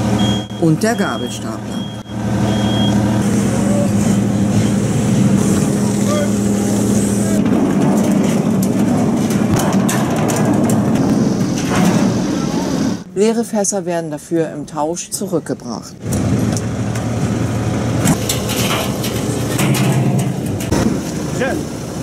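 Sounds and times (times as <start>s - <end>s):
heavy diesel machinery running: 0.0s - 13.4s, 15.5s - 22.0s
knocks and clanks: 7.3s - 13.0s, 18.0s - 21.2s.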